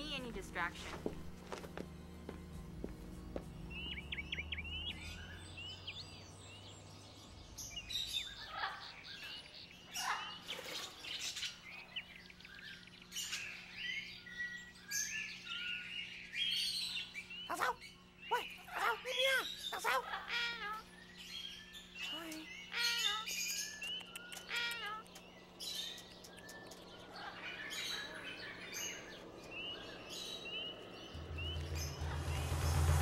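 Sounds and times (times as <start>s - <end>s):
caged birds chirping and calling: 0.0s - 32.9s.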